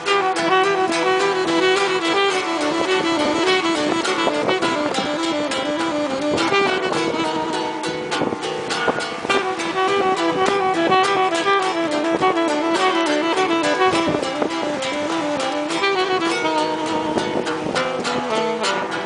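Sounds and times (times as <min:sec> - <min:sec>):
saxophone melody: 0:00.0 - 0:19.0
strummed acoustic guitar: 0:00.1 - 0:19.0.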